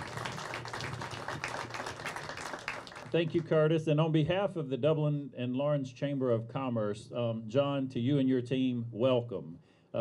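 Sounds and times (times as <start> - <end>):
audience applauding: 0.0 - 3.5.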